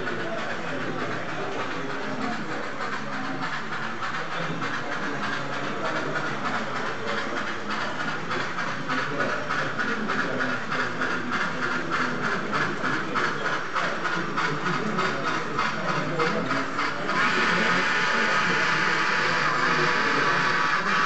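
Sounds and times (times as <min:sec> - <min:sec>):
model steam train chuffing hiss: 0:00.0 - 0:21.0.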